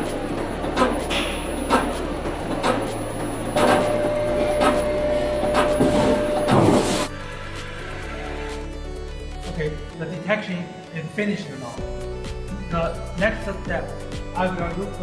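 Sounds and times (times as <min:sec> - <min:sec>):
mid-pitched whine: 0:00.0 - 0:07.1
machine hum: 0:00.0 - 0:08.6
background music: 0:00.0 - 0:15.0
thin high whine: 0:01.0 - 0:08.7
machine clicks: 0:03.6 - 0:03.9.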